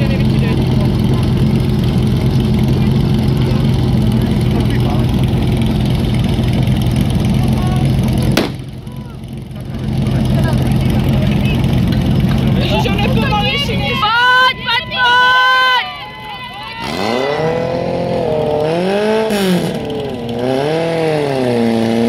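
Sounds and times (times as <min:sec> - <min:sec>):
engine running steadily: 0:00.0 - 0:22.0.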